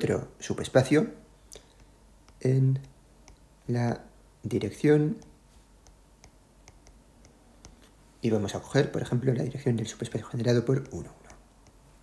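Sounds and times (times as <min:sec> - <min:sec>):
stylus clicking on glass screen: 0:01.6 - 0:03.5, 0:05.1 - 0:07.9.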